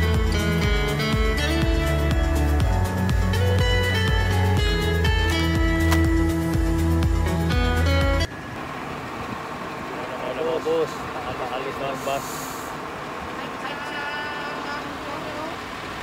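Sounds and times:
background music: 0.0 - 8.3
bus engine running: 0.0 - 16.0
voices: 9.4 - 15.8
brief hiss: 12.0 - 12.8.

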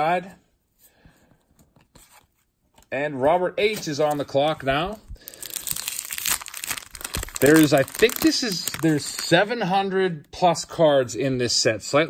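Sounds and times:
cardboard cards rustling: 3.6 - 9.4.

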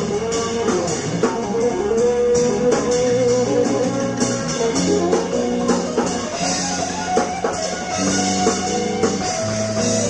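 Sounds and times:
drums with cymbal wash: 0.0 - 10.0
electric bass: 0.0 - 10.0
electric guitar lines: 0.0 - 10.0.

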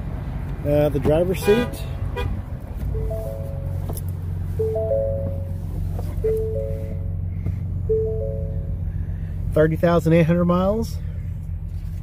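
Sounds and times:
truck engine idling: 0.0 - 12.0
three-note warning chime: 4.6 - 5.5, 6.3 - 7.1, 7.9 - 8.7.

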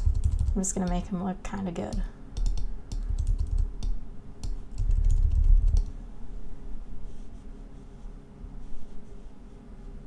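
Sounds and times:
sharp mouse clicks: 1.9 - 5.9.

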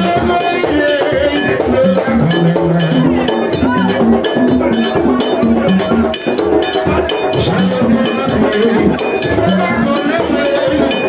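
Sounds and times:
percussion-driven music: 0.0 - 11.0.

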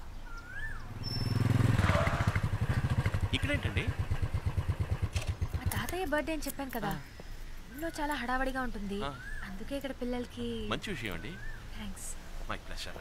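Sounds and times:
motorcycle engine idling: 1.2 - 5.9.

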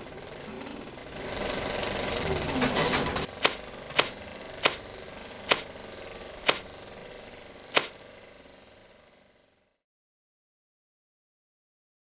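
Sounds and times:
sharp clicks: 3.3 - 4.8, 5.5 - 5.7, 6.4 - 6.7, 7.7 - 8.0.

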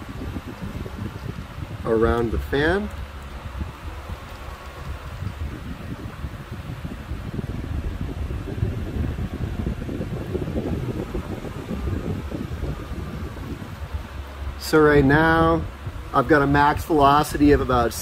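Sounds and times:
air buffeting microphone: 0.0 - 18.0
exhaust fan running: 0.0 - 18.0.

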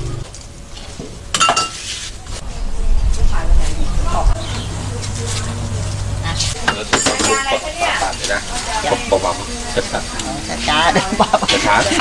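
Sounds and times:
crockery and utensils clinking: 1.3 - 1.9, 6.5 - 8.5
low hum: 2.3 - 6.6.

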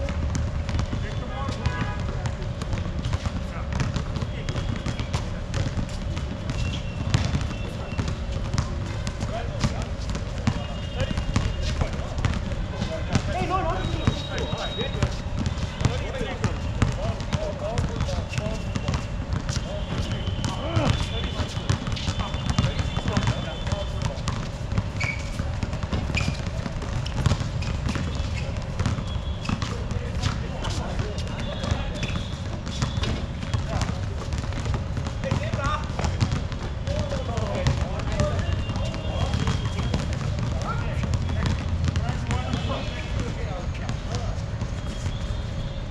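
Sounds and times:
basketball bouncing on hard court: 0.0 - 45.4
players calling out: 3.4 - 44.2
short high squeaks: 6.5 - 7.8, 24.9 - 25.4, 26.1 - 29.7, 31.9 - 33.2.

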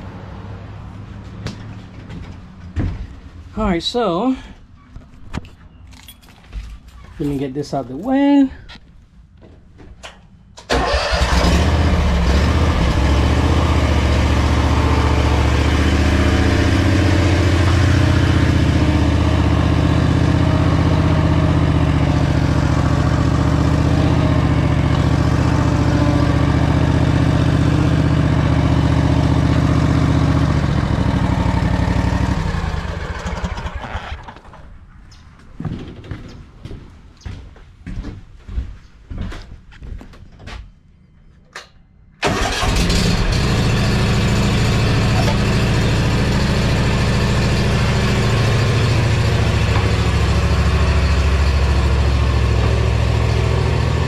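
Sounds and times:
mower engine running: 10.7 - 34.4, 42.2 - 54.0.

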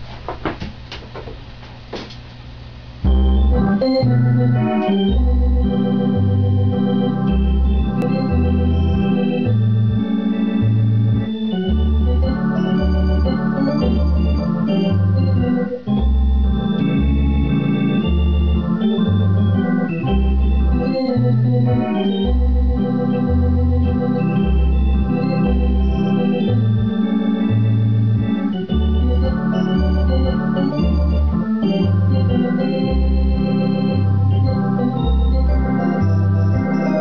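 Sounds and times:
organ playing chords: 3.0 - 37.0.

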